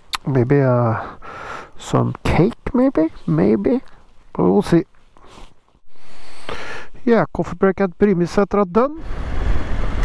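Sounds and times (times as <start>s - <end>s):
wind and road noise: 0.0s - 10.0s
faint breath: 1.0s - 1.8s, 5.2s - 7.0s.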